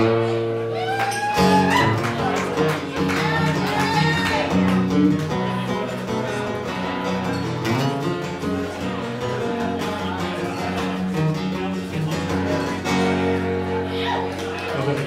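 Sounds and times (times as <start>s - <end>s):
acoustic guitar: 0.0s - 15.0s.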